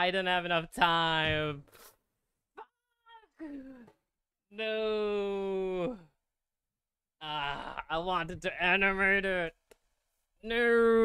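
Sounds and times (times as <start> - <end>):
man whimpering and moaning: 2.6 - 6.2, 7.2 - 8.0.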